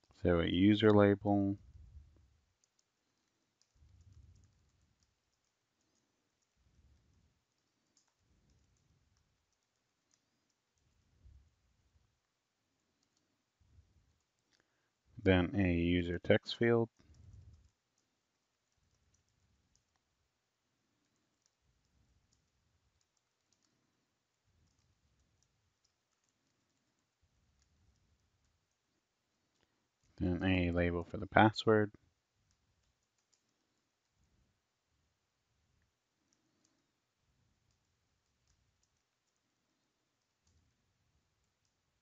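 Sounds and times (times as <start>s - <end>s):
computer keyboard typing clicks: 2.5s - 11.0s, 16.6s - 20.1s, 21.0s - 28.9s, 32.5s - 33.8s, 37.6s - 40.7s.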